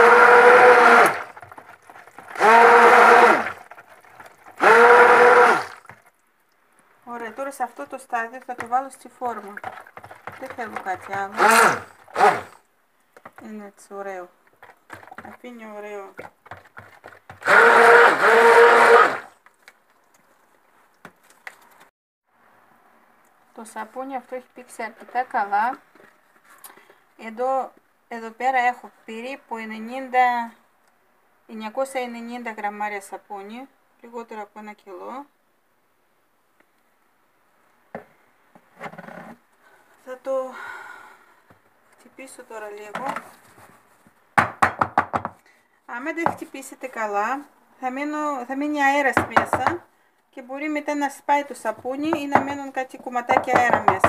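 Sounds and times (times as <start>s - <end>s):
stick blender motor whine: 0.0s - 1.6s, 2.2s - 3.6s, 4.5s - 5.8s, 10.2s - 12.6s, 17.3s - 19.3s
soap mold knocking on countertop: 44.4s - 45.4s, 49.1s - 49.8s, 52.0s - 52.7s, 53.3s - 54.0s.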